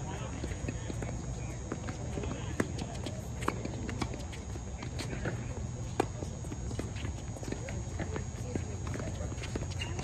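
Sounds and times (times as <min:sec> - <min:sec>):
shoes on hard court: 0:00.0 - 0:10.0
ball bouncing: 0:00.4 - 0:10.0.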